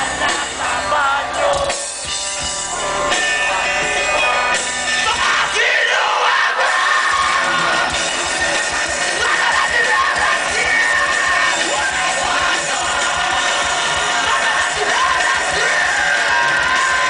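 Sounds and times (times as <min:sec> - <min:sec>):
crowd yelling and singing along: 0:00.0 - 0:17.0
live rock band playing: 0:00.0 - 0:17.0.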